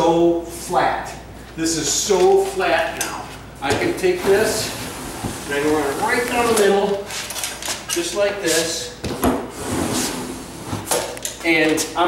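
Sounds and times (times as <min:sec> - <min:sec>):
drywall box scraping wallboard: 0:04.2 - 0:06.9, 0:09.5 - 0:10.9.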